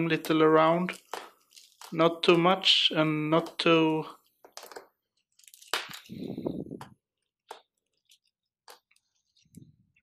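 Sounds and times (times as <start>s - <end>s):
clay grains crunching and clicking: 0.0s - 10.0s.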